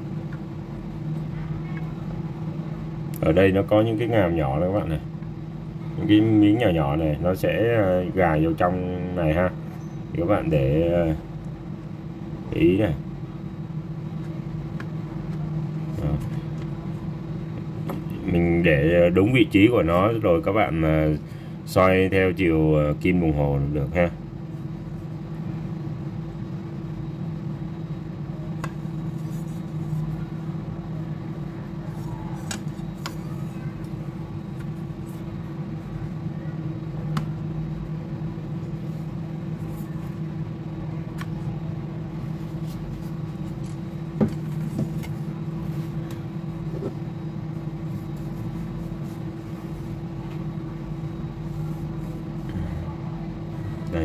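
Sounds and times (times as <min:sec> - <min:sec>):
low machine hum: 0:00.0 - 0:54.0.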